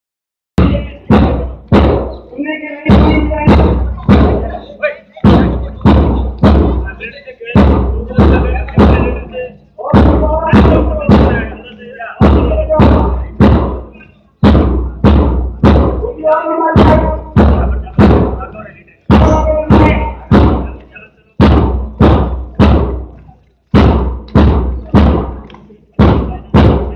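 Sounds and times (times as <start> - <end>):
person speaking: 0.6 - 14.2, 16.0 - 21.4
loud marching drum beats: 0.6 - 26.9.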